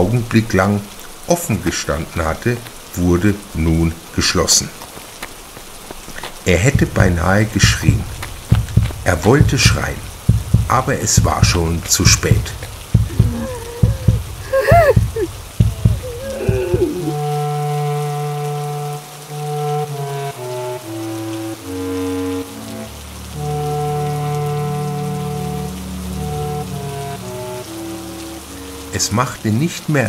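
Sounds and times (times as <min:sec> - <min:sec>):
rain: 0:00.0 - 0:30.0
ominous held chords: 0:06.7 - 0:29.1.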